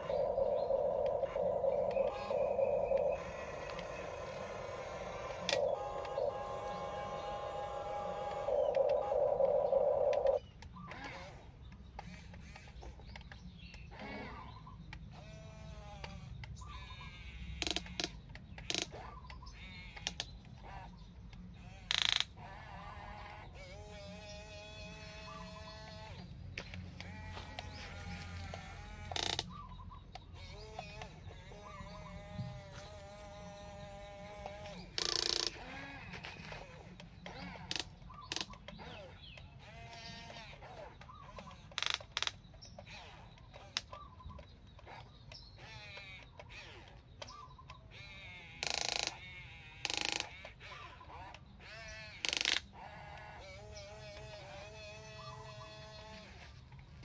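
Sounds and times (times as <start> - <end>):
toy excavator motors and gears: 0.0 - 9.3, 10.1 - 57.0.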